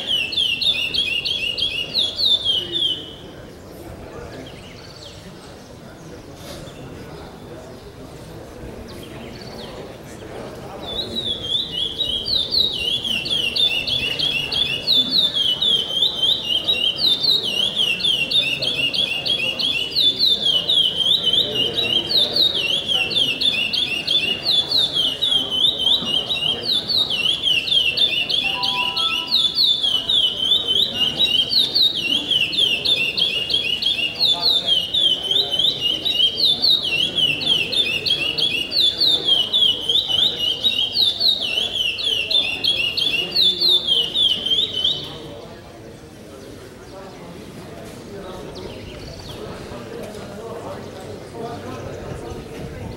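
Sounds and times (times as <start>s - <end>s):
songbird singing fast chirps: 0.0s - 6.3s, 10.7s - 45.4s.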